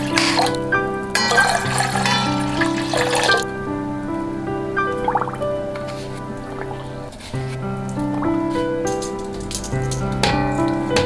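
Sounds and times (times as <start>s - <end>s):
instrumental music sustained notes: 0.0s - 11.0s.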